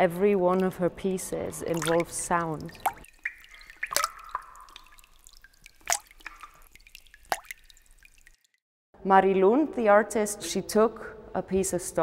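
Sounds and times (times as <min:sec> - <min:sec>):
drops plopping into fountain basin: 0:00.5 - 0:08.4.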